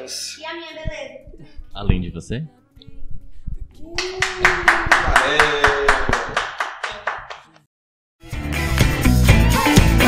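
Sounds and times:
hands clapping in rhythm: 4.0s - 7.7s.

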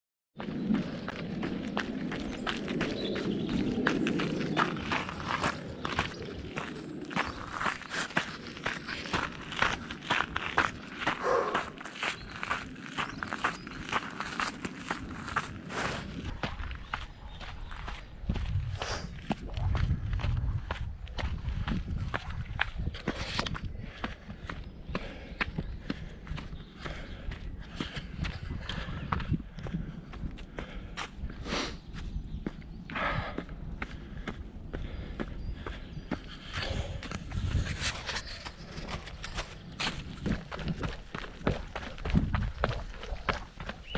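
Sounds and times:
footsteps on gravel: 0.4s - 43.9s
low rumble on microphone: 15.1s - 24.0s, 36.5s - 43.8s
loud breath: 30.5s - 31.9s, 32.9s - 37.2s.

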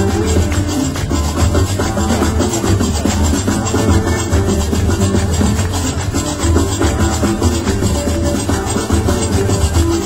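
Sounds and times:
live fusion band playing: 0.0s - 10.0s.

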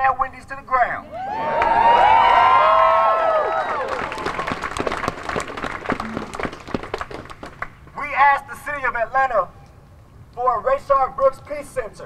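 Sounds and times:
crowd cheering and whooping: 1.0s - 6.4s
crowd clapping: 1.3s - 7.9s.

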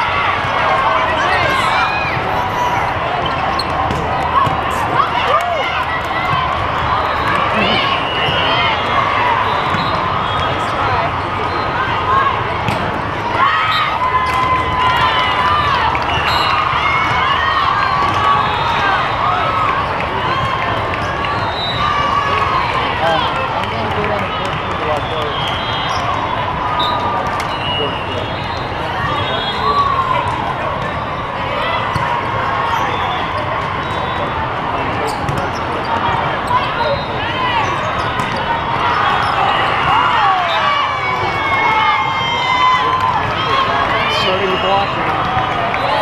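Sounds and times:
many overlapping voices: 0.0s - 46.0s
volleyballs hit and bouncing: 3.2s - 8.6s, 12.4s - 13.5s, 37.9s - 38.6s.

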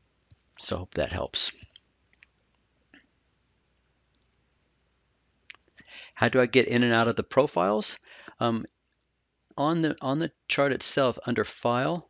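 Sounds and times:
faint clicks: 1.6s - 3.1s, 3.8s - 4.7s.

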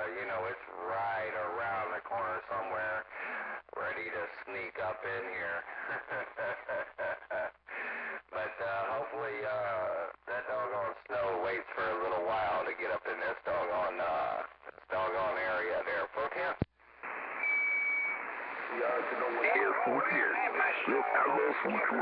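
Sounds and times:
voice over cb radio: 0.0s - 6.8s, 8.2s - 17.3s, 18.5s - 22.0s
radio static hiss: 0.0s - 22.0s.

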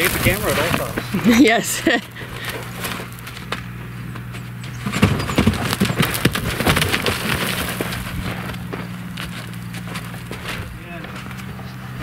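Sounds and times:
horse hooves stepping and scuffing: 0.0s - 12.0s.

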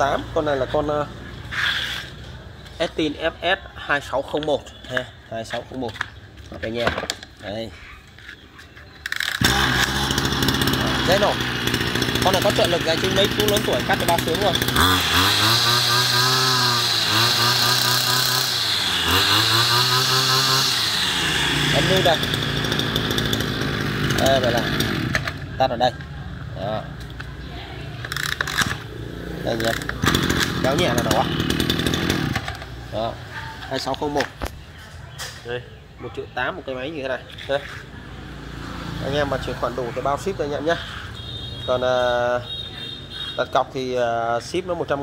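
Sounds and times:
brush cutter engine running: 9.0s - 27.3s, 28.0s - 34.5s.

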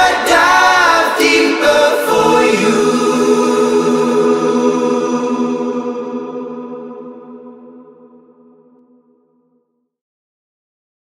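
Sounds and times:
choir-like vocal harmonies: 0.0s - 8.9s
sustained chords: 2.1s - 8.9s.

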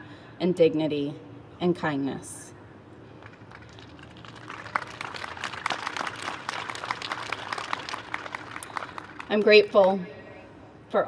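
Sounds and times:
audience applause: 3.2s - 9.6s.

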